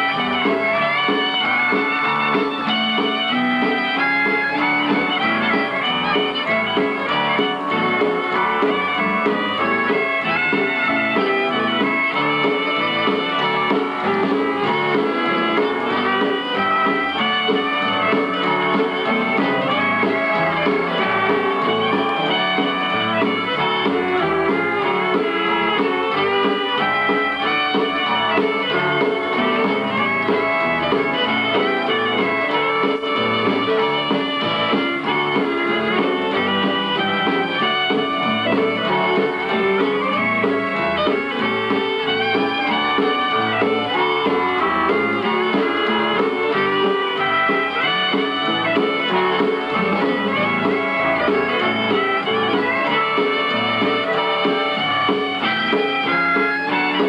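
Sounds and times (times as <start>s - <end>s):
fiddles bowing: 0.0s - 57.0s
western swing band playing: 0.0s - 57.0s.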